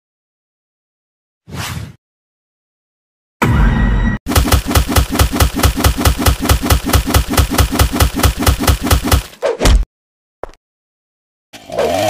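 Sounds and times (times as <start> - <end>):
rapid punch impacts: 4.3 - 9.8.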